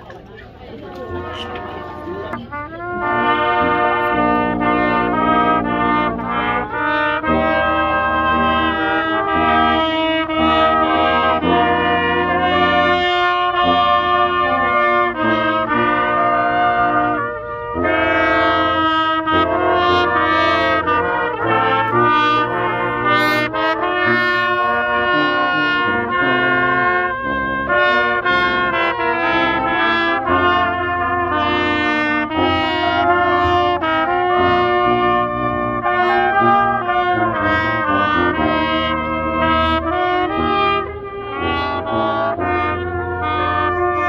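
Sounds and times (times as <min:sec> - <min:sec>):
brass band playing: 0:00.0 - 0:44.0.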